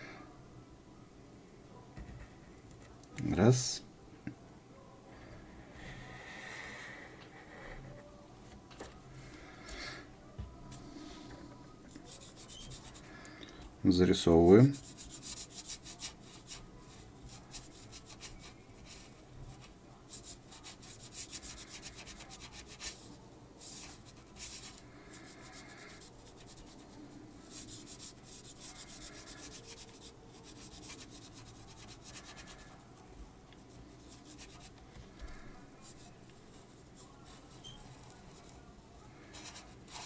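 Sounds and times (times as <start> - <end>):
felt-tip pen scratching on paper: 12.0 - 13.1, 14.7 - 32.8, 33.6 - 38.6, 39.2 - 40.0.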